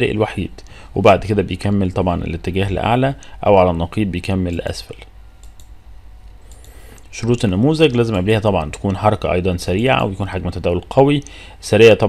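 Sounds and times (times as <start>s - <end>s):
steady low hum: 0.0s - 12.0s
computer clicks: 5.4s - 9.1s.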